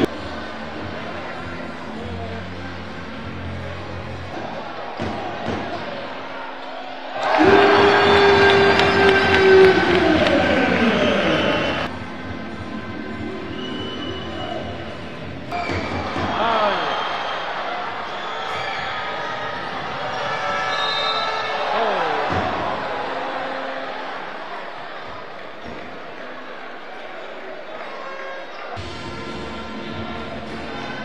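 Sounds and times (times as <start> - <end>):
crowd noise and voices: 0.0 - 31.0.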